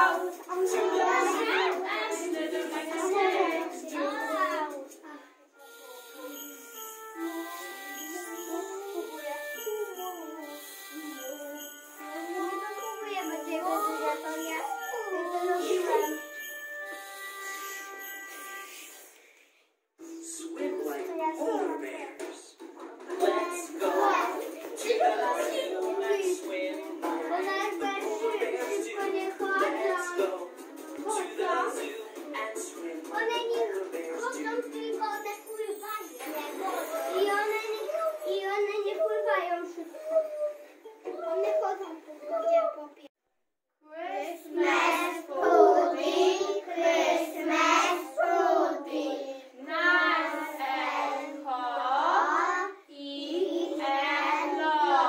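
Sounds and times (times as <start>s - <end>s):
children singing in chorus: 23.1s - 32.0s, 44.5s - 52.5s.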